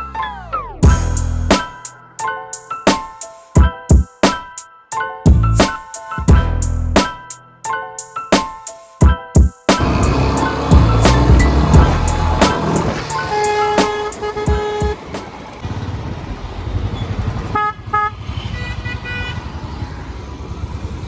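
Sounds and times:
motorcycle engine rumbling: 0:09.8 - 0:21.0
road traffic: 0:09.8 - 0:21.0
vehicle horns honking: 0:11.4 - 0:15.4, 0:17.4 - 0:19.6.

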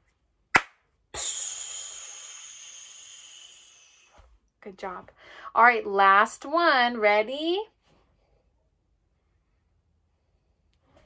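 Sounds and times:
sharp hand clap: 0:00.6 - 0:00.8
hiss made with the mouth: 0:01.2 - 0:04.2.

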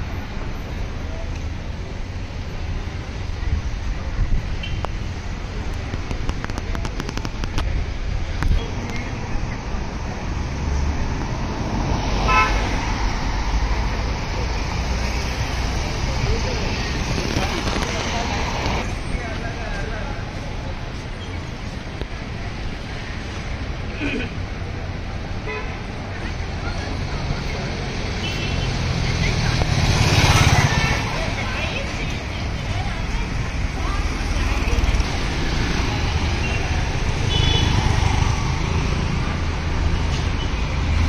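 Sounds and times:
road traffic rumble: 0:00.0 - 0:41.0
vehicle horn toot: 0:12.3 - 0:12.6
vehicle engine passing by: 0:27.2 - 0:31.6.

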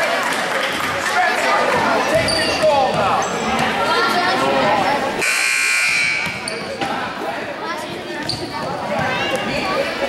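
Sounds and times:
voices: 0:00.9 - 0:10.0
scoreboard horn buzzing: 0:05.2 - 0:06.4.

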